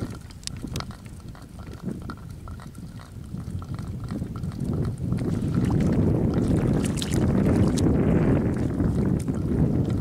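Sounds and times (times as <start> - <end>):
light crackles: 0.0 - 8.6
wind buffeting microphone: 0.0 - 10.0.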